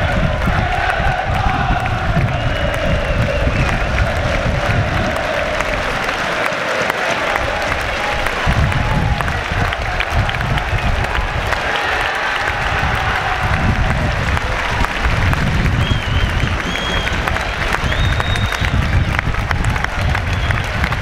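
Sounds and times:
crowd clapping: 0.0 - 21.0.

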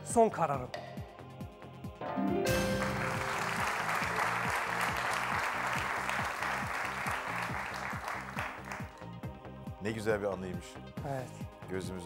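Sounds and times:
rhythmic music bed: 0.7 - 12.0
studio audience applauding: 2.5 - 9.2.

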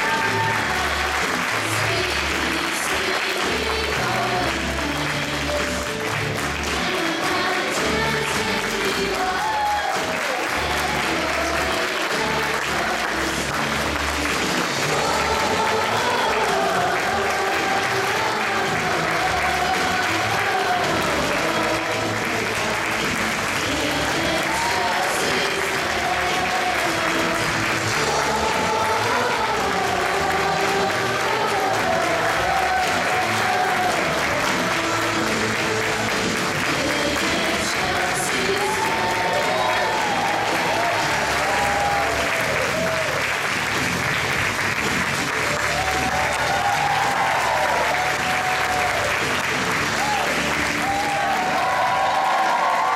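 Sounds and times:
audience applauding: 0.0 - 52.9
melodic music: 0.0 - 52.9.

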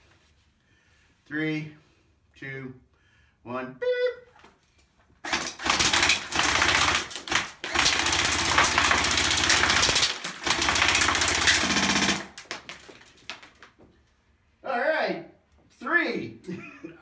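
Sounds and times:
airsoft rifle firing full-auto: 5.2 - 12.4.

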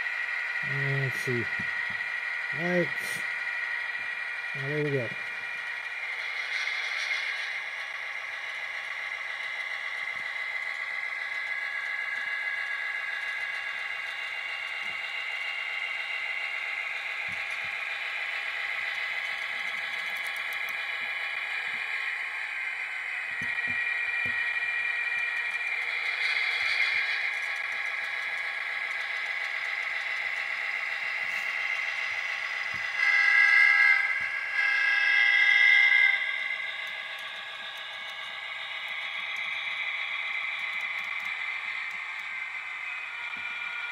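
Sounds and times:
tinny model diesel engine sound: 0.0 - 43.9.

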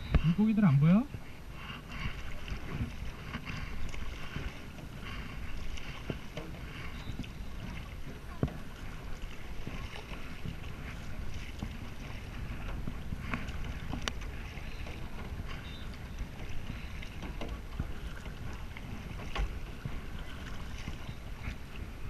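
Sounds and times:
paddle strokes splashing: 0.0 - 22.0
wind rumble on microphone: 0.0 - 22.0.

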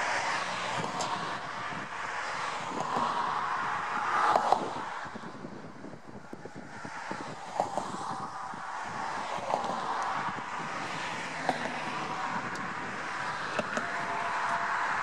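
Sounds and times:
car road and tyre noise: 0.0 - 15.0.

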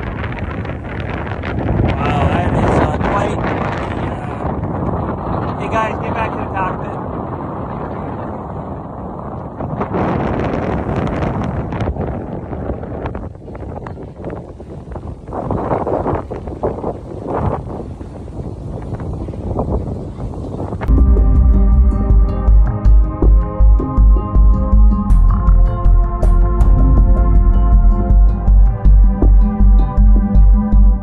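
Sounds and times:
rushing rumbling background noise: 0.0 - 31.0.

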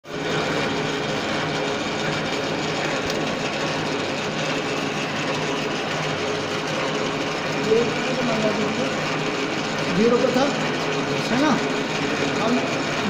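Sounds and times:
metal lathe humming: 0.1 - 13.0.

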